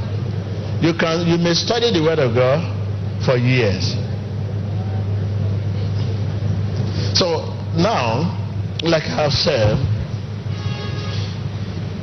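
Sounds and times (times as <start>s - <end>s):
room noise hiss: 0.0s - 12.0s
steady low hum: 0.0s - 12.0s.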